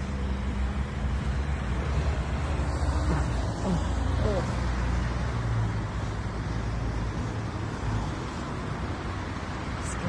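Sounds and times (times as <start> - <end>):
passing vehicles hissing: 0.0 - 10.0.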